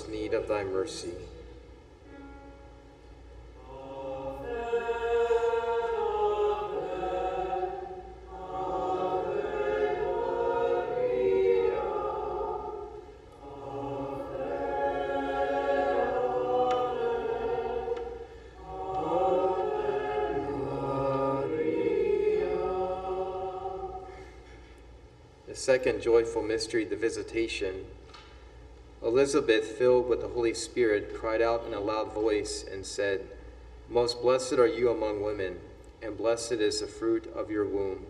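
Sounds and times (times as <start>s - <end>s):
choir singing a hymn: 2.1s - 24.6s.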